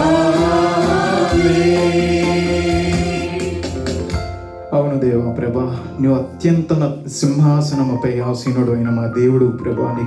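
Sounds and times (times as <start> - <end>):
group singing a hymn: 0.0 - 4.1.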